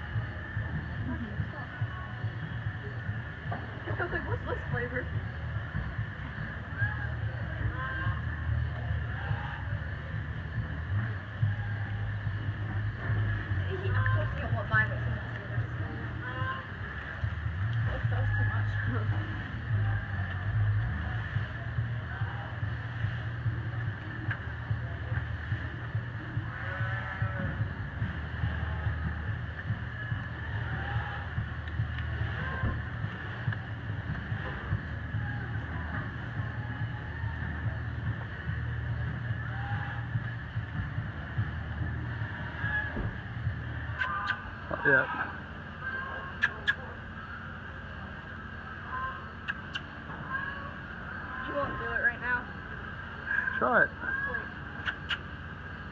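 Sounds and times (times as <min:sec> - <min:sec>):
people talking indistinctly: 0:00.0 - 0:30.5, 0:31.1 - 0:55.9
steady low hum: 0:00.0 - 0:55.9.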